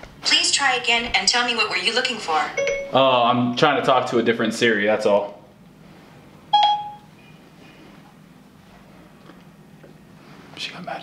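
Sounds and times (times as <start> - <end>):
electronic chime: 2.6 - 3.2, 6.6 - 7.1
faint short high beeps: 6.6 - 7.0.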